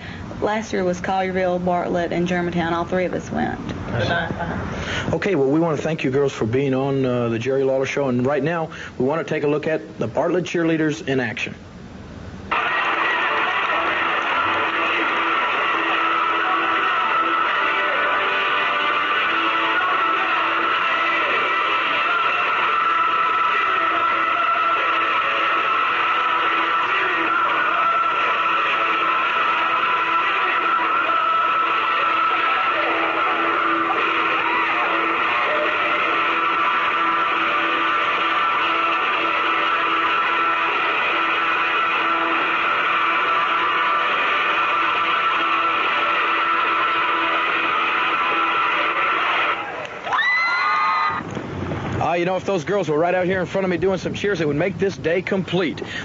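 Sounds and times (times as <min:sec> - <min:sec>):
music with guitar: 0:12.6 - 0:49.8.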